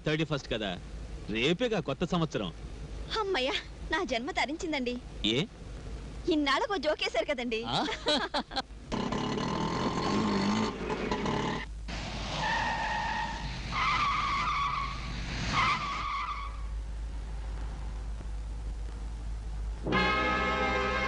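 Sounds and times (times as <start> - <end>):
tyres squealing: 8.9 - 11.7, 12.4 - 16.8
car driving fast: 8.9 - 16.7.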